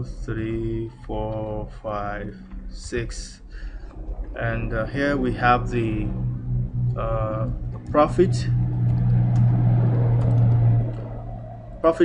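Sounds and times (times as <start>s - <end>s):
loud steady low hum: 0.0s - 12.0s
typing on computer keyboard: 10.2s - 11.0s.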